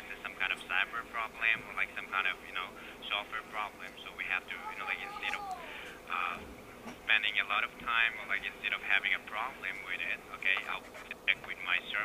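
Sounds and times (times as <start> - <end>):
speech through phone speaker: 0.1 - 6.4, 7.1 - 12.0.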